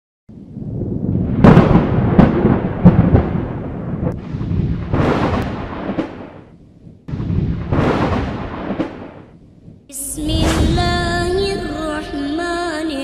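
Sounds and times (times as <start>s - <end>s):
deep rumble: 0.3s - 8.7s, 9.3s - 13.0s
heavy booming hits: 0.8s - 6.4s, 7.1s - 9.2s, 10.2s - 12.4s.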